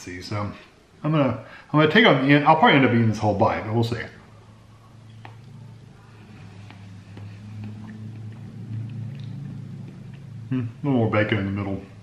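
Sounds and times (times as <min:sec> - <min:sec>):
steady low hum: 0:00.0 - 0:12.0
wet mouth clicks chewing: 0:06.6 - 0:10.6.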